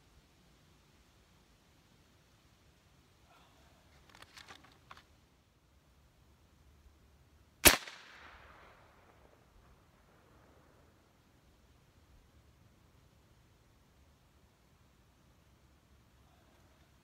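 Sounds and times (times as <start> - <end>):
air rifle shot: 7.6 - 9.2.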